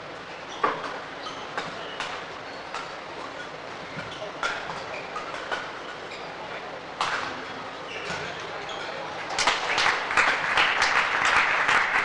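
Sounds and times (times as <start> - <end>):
sports hall noise: 0.0 - 12.0
rackets striking shuttlecock: 7.0 - 7.4.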